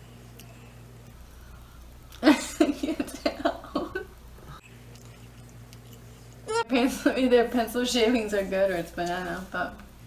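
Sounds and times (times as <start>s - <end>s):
person laughing: 2.2s - 4.2s.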